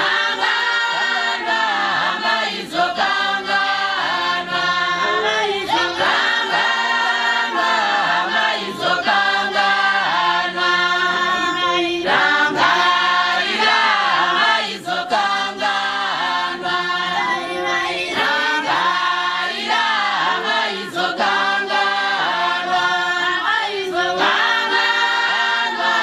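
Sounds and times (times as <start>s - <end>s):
congregation singing a hymn: 0.0s - 26.0s.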